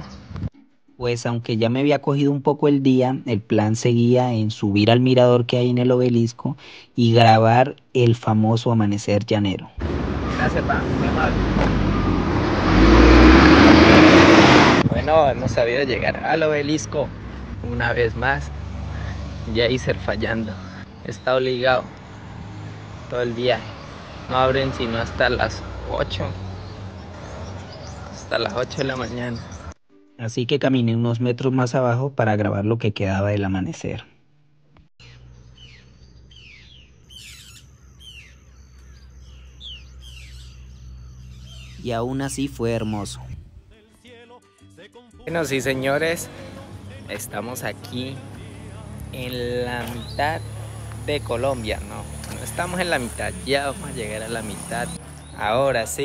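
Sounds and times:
bus passing by: 0:09.8 - 0:29.8, 0:45.3 - 0:56.0
harsh bird call: 0:35.0 - 0:42.2, 0:45.4 - 0:56.0.

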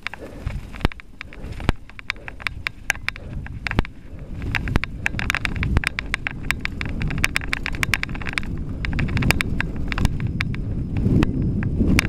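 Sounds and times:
bike rattling and clacking: 0:00.0 - 0:12.0
bike tyres rumbling on dirt: 0:00.0 - 0:12.0.

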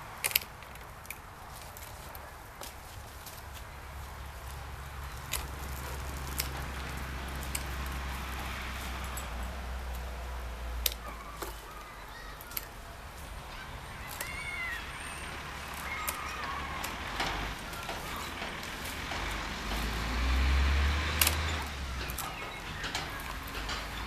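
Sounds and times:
pruning shears snipping twigs: 0:00.0 - 0:24.0.

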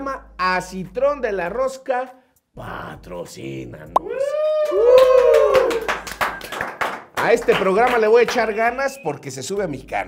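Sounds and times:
long drawn-out shout: 0:04.0 - 0:06.0
person clapping hands: 0:04.6 - 0:08.5.

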